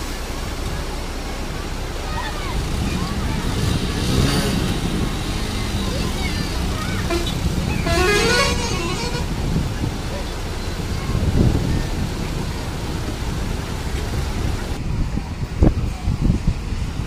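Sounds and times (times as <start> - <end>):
floodwater rushing: 0.0 - 17.0
people calling out: 1.4 - 14.8.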